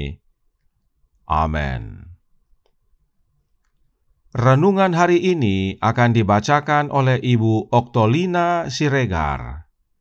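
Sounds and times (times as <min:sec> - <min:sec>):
person speaking: 0:00.0 - 0:00.2, 0:01.2 - 0:02.2, 0:04.4 - 0:09.6
faint small clicks: 0:00.5 - 0:01.3, 0:02.6 - 0:04.0.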